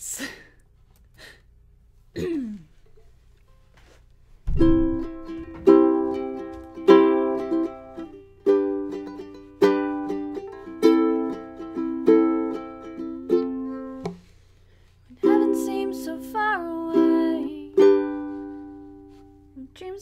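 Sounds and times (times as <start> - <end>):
ukulele strumming chords: 4.5 - 14.3, 15.2 - 19.5.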